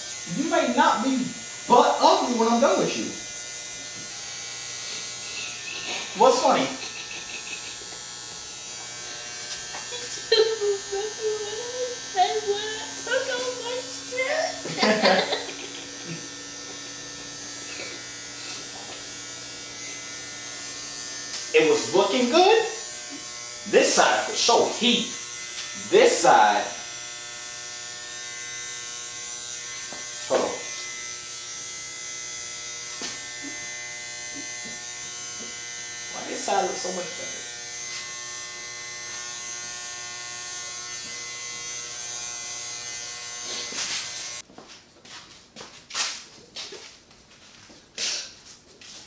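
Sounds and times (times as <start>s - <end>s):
electric hair clippers buzzing: 0.0s - 44.5s.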